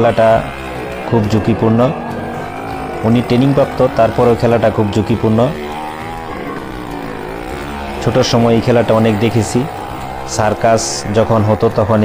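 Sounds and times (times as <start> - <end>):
motorcycle engine running hard: 0.0 - 12.0.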